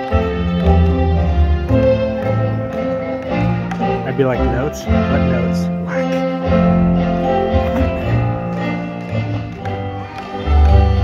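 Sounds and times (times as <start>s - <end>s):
sustained musical accompaniment: 0.0s - 11.0s.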